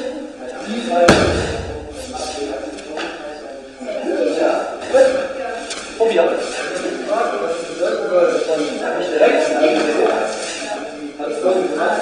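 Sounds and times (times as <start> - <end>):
body slamming onto gym mat: 1.1 - 2.4.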